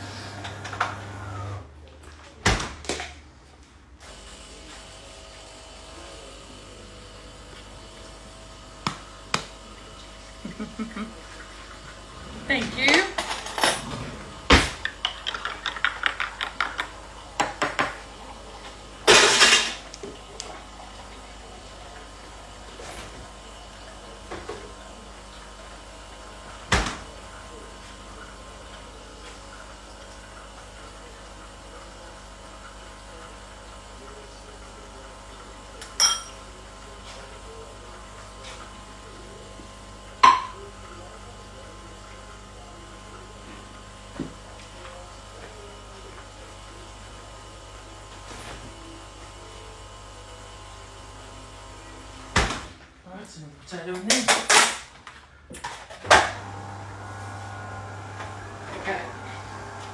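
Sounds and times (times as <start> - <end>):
kitchen machine humming: 0.0 - 59.9
dishes and utensils clinking: 35.8 - 36.4.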